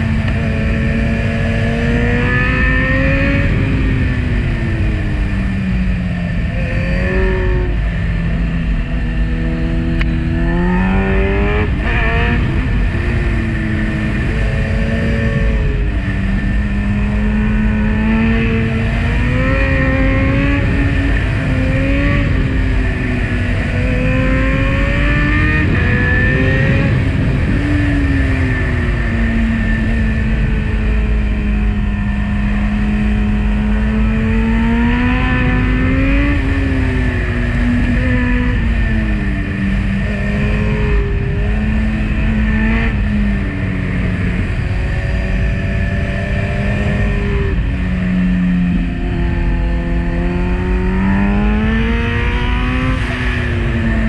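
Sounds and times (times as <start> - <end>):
motorcycle engine revving: 0.0 - 54.0
wind rush: 0.0 - 54.0.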